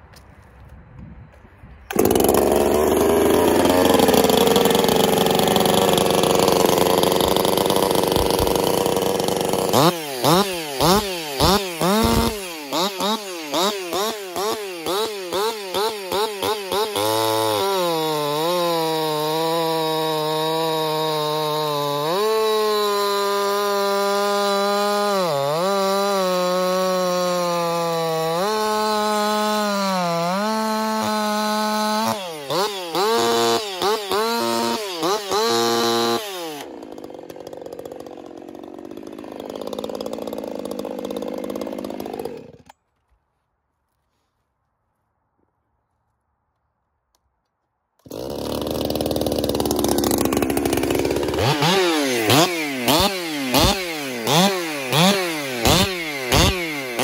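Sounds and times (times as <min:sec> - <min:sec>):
chainsaw revving and cutting: 0:01.9 - 0:42.8, 0:48.0 - 0:57.0.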